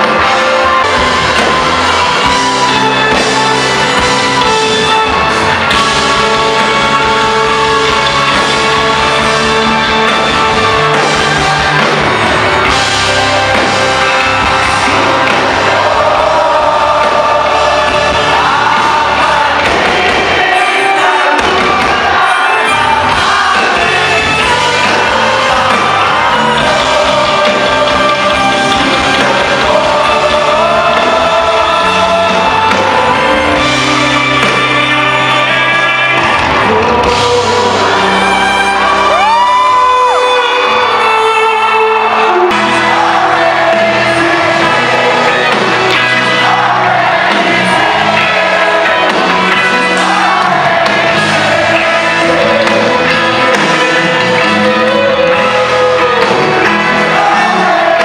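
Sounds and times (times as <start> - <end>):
crowd noise: 0.0 - 58.0
person singing: 0.0 - 58.0
rock band playing live: 0.0 - 58.0.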